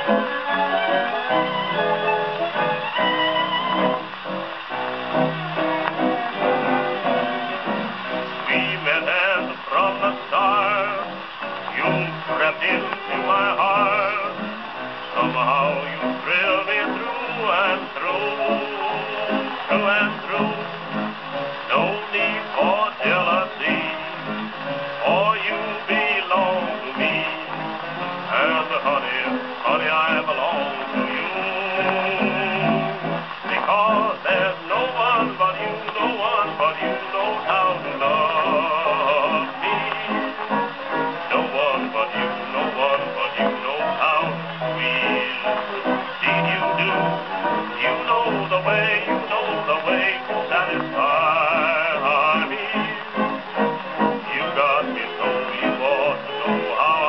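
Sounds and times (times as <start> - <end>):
dance-band music on gramophone: 0.0 - 57.0.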